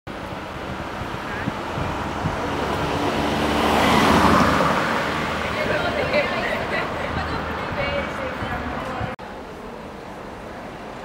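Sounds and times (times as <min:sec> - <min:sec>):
street traffic: 0:00.1 - 0:11.0
car passing close: 0:00.2 - 0:09.2.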